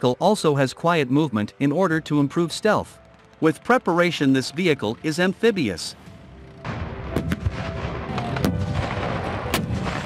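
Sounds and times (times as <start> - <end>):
low vehicle rumble: 5.6 - 10.0
gunshots: 6.7 - 10.0.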